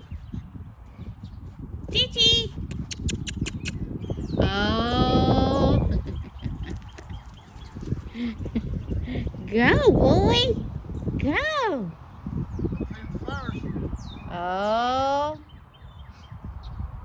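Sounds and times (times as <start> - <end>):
wind rumble on microphone: 0.0 - 17.0
sharp clicks: 2.7 - 3.8.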